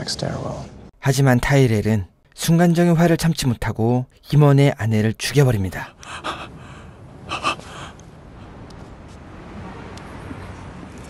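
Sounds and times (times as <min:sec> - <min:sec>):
person gasping: 0:05.9 - 0:08.6.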